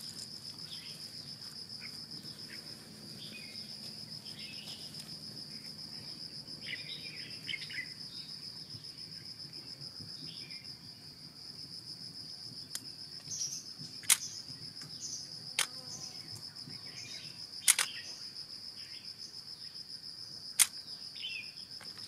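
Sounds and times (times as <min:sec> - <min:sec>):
high-pitched insect trill: 0:00.0 - 0:22.0
sharp clicks: 0:14.0 - 0:14.9, 0:17.6 - 0:18.0, 0:20.6 - 0:20.8.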